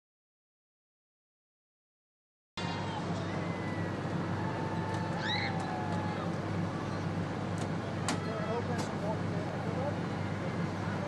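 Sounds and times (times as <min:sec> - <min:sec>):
boat engine idling: 0:02.6 - 0:11.0.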